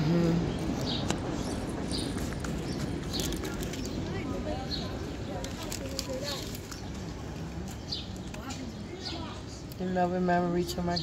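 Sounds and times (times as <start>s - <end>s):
faint indistinct voices: 0.0s - 11.0s
steady background noise: 0.0s - 11.0s.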